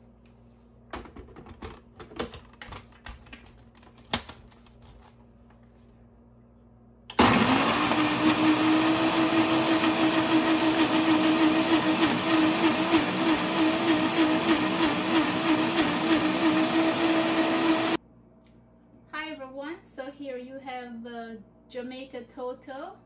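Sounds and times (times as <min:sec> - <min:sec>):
blender crushing ice: 0:07.1 - 0:18.0.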